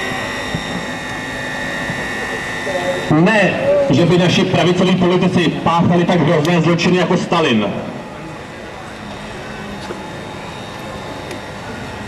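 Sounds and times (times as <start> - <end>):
faint constant high tone: 0.0 - 12.0
murmur of street crowd: 0.0 - 12.0.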